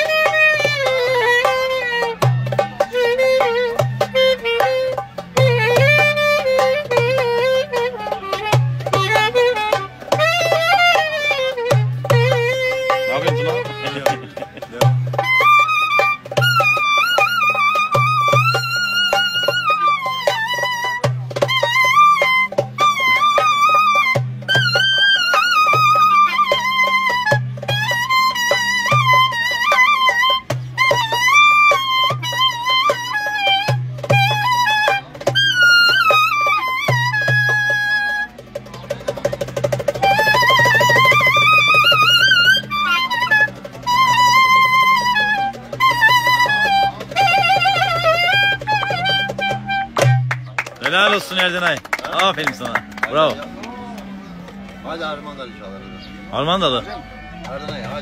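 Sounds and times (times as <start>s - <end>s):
clarinet folk melody: 0.0s - 58.0s
goblet drum strokes: 0.0s - 58.0s.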